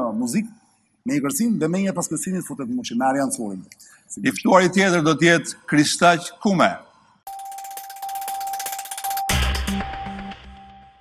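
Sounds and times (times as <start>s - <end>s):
electronic jingle: 7.3s - 11.0s.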